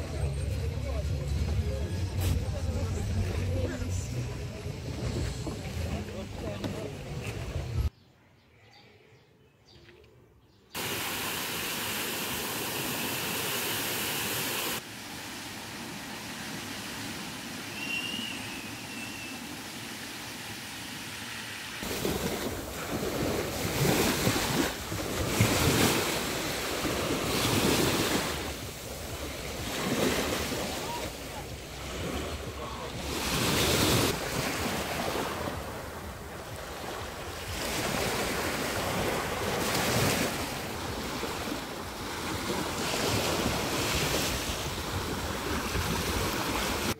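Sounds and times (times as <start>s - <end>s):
fountain spray hissing: 10.8s - 21.8s
small waves washing onto beach: 10.8s - 46.9s.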